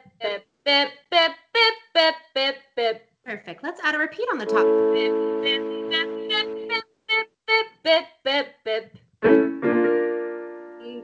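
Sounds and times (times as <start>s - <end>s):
woman singing staccato notes: 0.0s - 9.0s.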